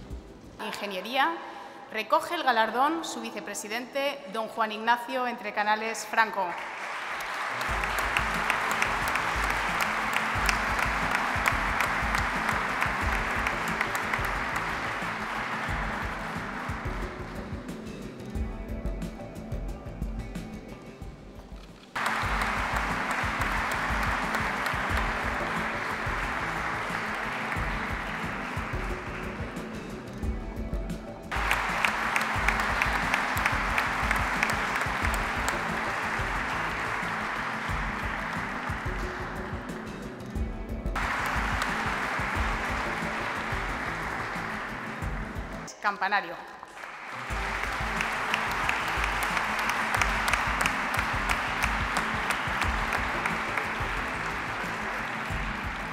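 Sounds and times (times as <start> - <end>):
background music: 0.0 - 55.9
audience applauding: 6.4 - 18.0, 22.0 - 30.3, 31.3 - 40.2, 41.0 - 45.7, 46.7 - 55.9.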